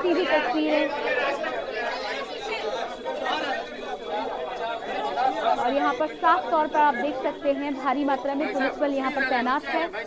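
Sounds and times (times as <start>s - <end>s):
crowd of men talking and calling: 0.0s - 10.0s.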